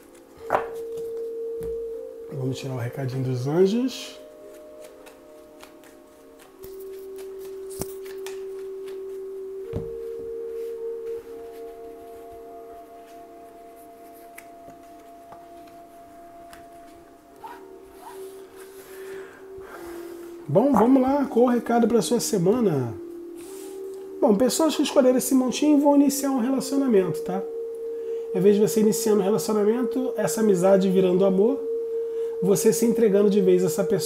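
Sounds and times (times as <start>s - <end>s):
soft music of held tones: 0.0s - 34.0s
cards rustling and clicking: 4.5s - 9.1s.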